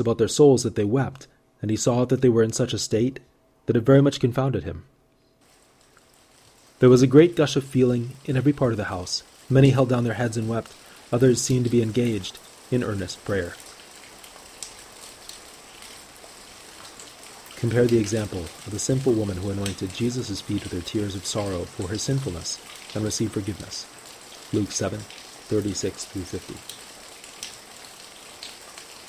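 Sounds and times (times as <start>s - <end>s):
rain-like hiss: 5.4s - 29.0s.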